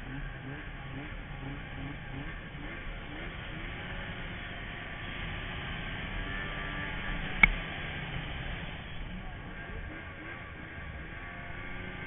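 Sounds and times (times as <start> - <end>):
snowmobile engine running: 0.0 - 12.0.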